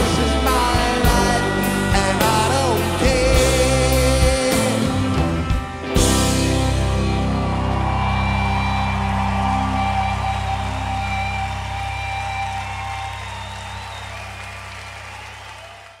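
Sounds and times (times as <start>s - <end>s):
rock band sustained chord: 0.0s - 14.1s
audience clapping: 6.7s - 16.0s.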